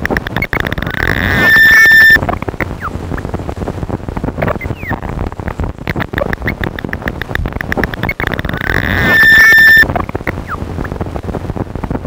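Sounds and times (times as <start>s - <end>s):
stuttering electronic clicks: 0.0s - 3.3s, 4.4s - 11.0s
warbling electronic pitches: 0.0s - 3.3s, 4.4s - 5.1s, 5.9s - 11.0s
short gliding chirps: 0.2s - 3.2s, 7.7s - 10.6s.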